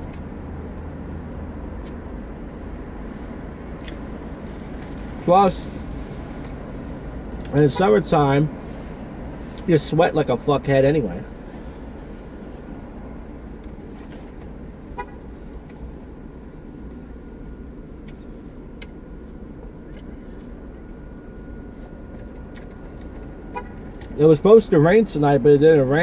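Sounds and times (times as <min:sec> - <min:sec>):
traffic hum through car windows: 0:00.0 - 0:26.0.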